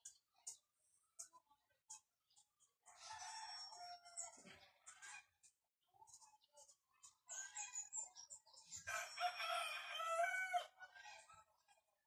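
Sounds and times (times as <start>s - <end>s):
rooster crowing: 8.9s - 10.7s.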